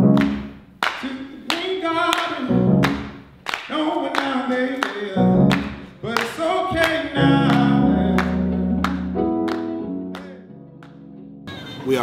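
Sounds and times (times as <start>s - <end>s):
sharp claps on the beat: 0.1s - 11.0s
man singing: 1.0s - 2.6s, 3.6s - 8.9s, 9.9s - 10.6s
live band playing: 7.2s - 11.8s.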